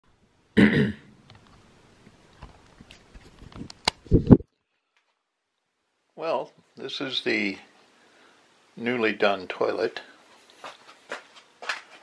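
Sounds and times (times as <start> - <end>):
person coughing: 0.6 - 1.1.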